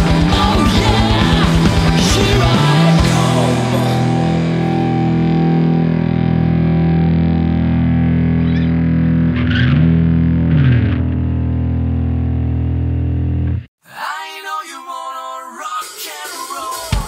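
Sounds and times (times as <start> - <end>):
distorted electric guitar chord: 0.0 - 13.7.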